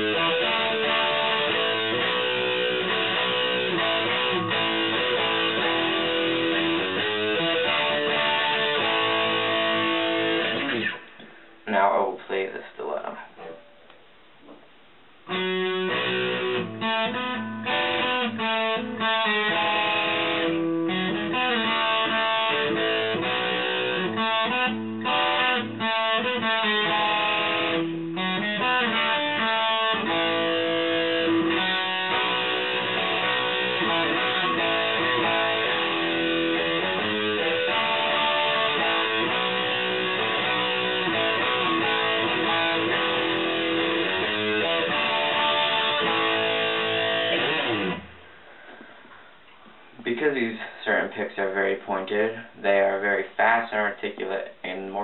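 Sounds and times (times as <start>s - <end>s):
electric guitar riff: 0.0s - 11.5s, 15.2s - 49.2s.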